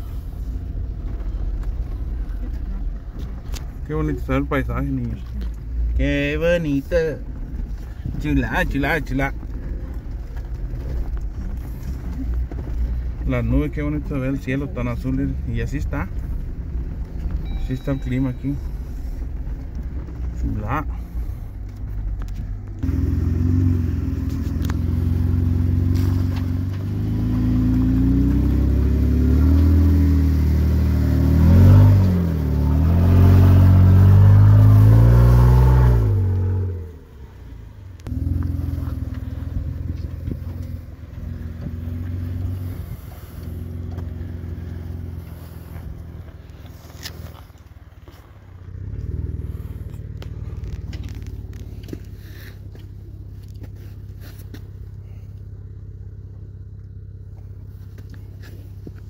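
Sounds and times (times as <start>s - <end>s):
engine revving under load: 6.0s - 59.0s.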